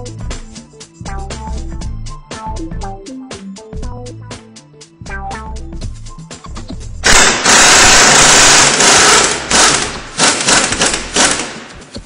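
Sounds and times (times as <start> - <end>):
pneumatic impact wrench hammering: 7.0 - 12.0.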